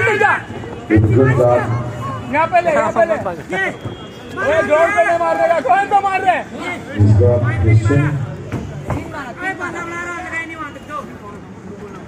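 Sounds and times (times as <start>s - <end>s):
crowd chatter: 0.0s - 12.0s
voices talking and calling out: 0.0s - 12.0s.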